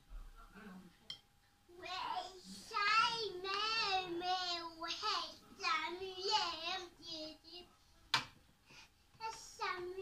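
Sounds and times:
young child singing: 1.7 - 7.8, 9.2 - 10.0.

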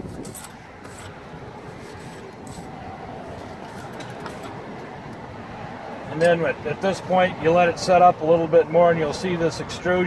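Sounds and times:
steel tool scraping mortar: 0.0 - 4.6.

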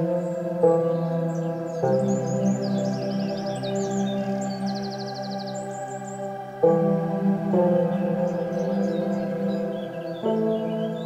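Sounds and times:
ambient music bell-like chord: 0.0 - 11.0
birds chirping: 0.0 - 11.0.

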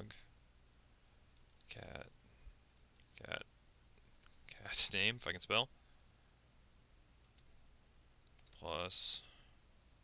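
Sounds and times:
faint computer clicks: 0.8 - 3.3, 3.9 - 4.6, 7.2 - 7.5, 8.2 - 9.4.

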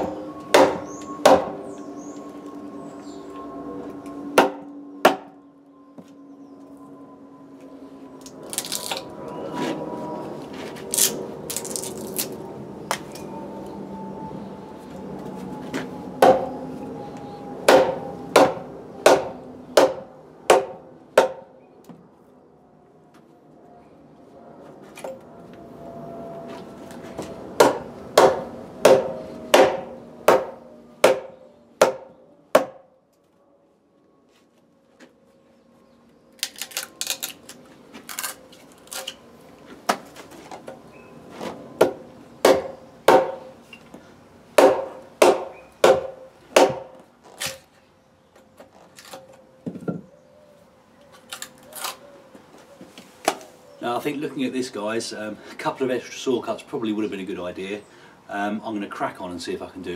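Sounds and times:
wooden mallet striking chisel: 17.7 - 21.4, 27.6 - 32.8, 44.6 - 46.9.

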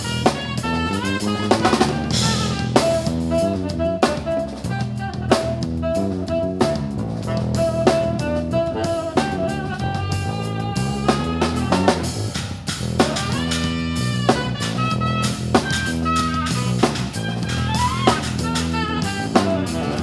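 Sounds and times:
drum kit steady beat: 0.0 - 20.0
electric bass line: 0.0 - 20.0.

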